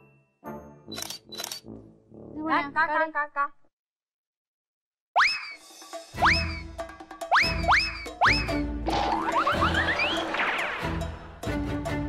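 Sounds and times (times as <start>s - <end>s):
comic music: 5.3s - 12.0s
cartoon boing effects: 7.4s - 10.6s.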